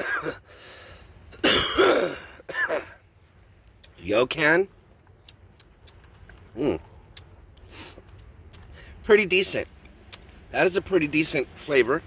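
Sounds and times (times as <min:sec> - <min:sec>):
man clearing his throat: 0:01.4 - 0:03.0.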